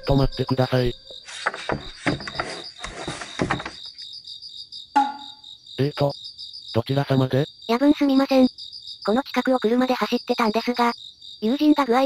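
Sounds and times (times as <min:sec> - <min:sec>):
crickets chirping: 0:00.0 - 0:12.0
short ringing knock: 0:05.0 - 0:05.4.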